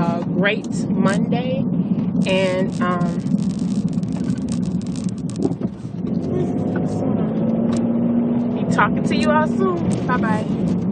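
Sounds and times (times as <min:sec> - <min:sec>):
car engine and road noise: 0:00.0 - 0:10.9
steady hum: 0:00.0 - 0:10.9.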